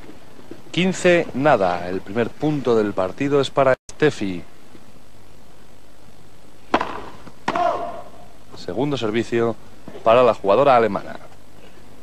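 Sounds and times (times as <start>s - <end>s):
tennis racket hitting ball: 6.7s - 8.0s
person shouting a call: 7.5s - 8.3s.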